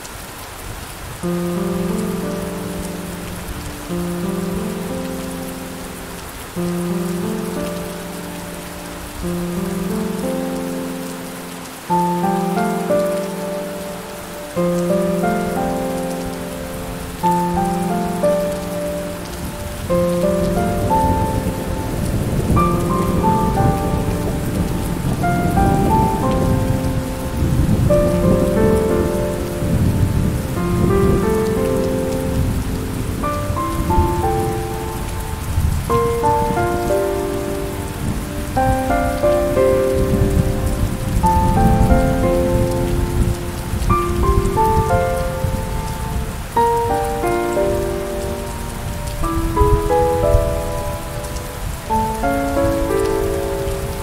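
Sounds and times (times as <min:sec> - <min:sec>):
gentle piano notes: 0:00.0 - 0:54.0
steady rain hiss: 0:00.0 - 0:54.0
low roll of thunder: 0:19.4 - 0:46.5.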